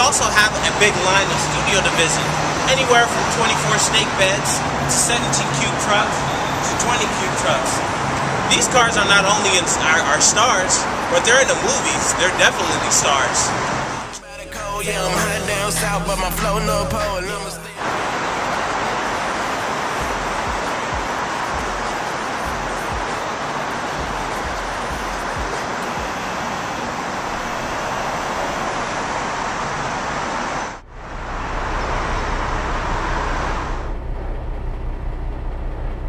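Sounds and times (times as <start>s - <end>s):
steady rushing noise: 0.0s - 14.2s, 17.6s - 36.0s
low hum: 30.8s - 36.0s.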